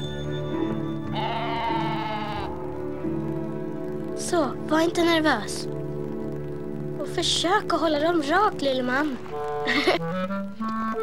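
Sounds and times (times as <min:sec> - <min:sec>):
soft orchestral music: 0:00.0 - 0:11.0
cartoon donkey bleat-like cry: 0:01.1 - 0:02.6.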